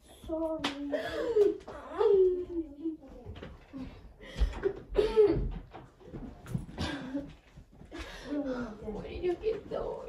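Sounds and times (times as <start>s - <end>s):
quiet movement noise: 0.0s - 10.0s.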